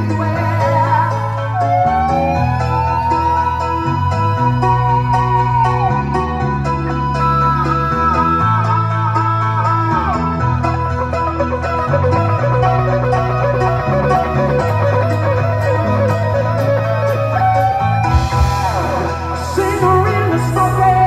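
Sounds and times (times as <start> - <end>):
bass notes: 0.0 - 21.0
electric guitar lead: 0.0 - 21.0
keyboards: 0.0 - 21.0
drum beat: 18.1 - 19.2.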